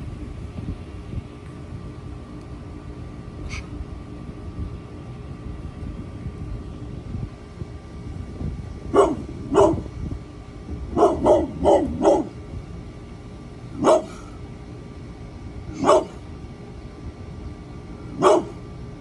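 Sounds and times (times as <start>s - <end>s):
steady low rumble: 0.0s - 19.0s
dog barking: 8.9s - 9.9s, 11.0s - 12.4s, 13.8s - 14.2s, 15.8s - 16.2s, 18.1s - 18.6s.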